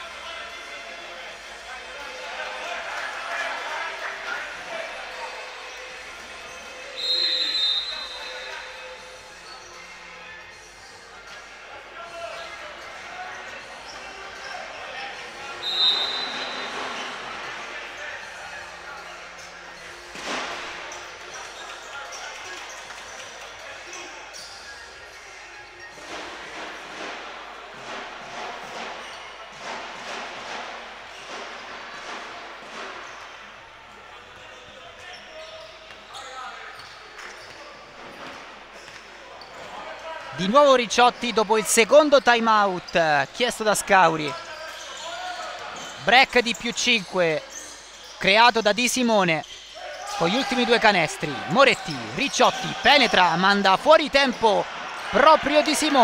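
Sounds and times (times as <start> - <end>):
echoing voices: 48.2 - 56.0.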